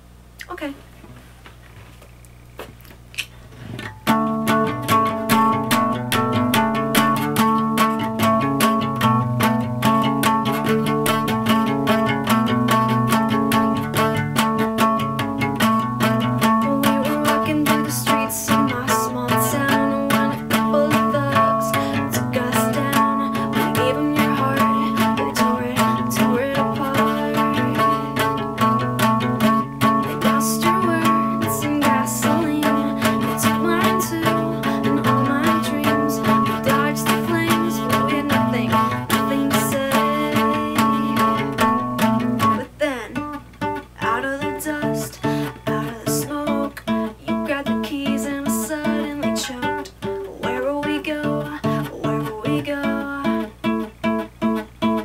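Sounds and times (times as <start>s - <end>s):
acoustic guitar picking: 3.2s - 55.0s.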